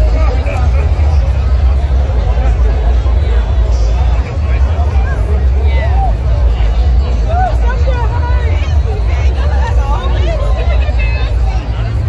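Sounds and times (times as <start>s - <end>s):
dense crowd chatter: 0.0s - 12.0s
steady low rumble: 0.0s - 12.0s.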